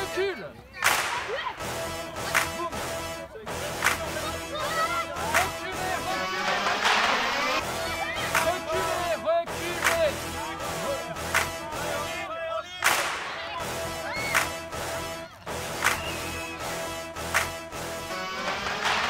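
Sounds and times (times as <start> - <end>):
spectators' voices: 0.0 - 19.0
children shouting: 0.7 - 1.6, 4.2 - 5.5, 7.4 - 8.8, 12.1 - 16.7.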